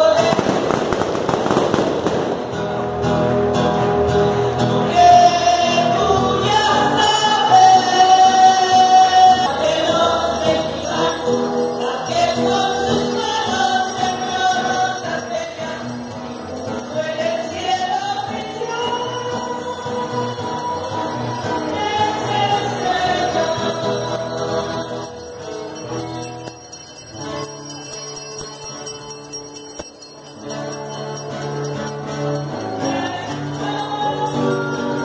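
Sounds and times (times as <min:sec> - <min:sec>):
voices singing a hymn: 0:00.0 - 0:01.0, 0:04.8 - 0:26.5, 0:32.4 - 0:35.0
small bells jingling: 0:09.4 - 0:35.0.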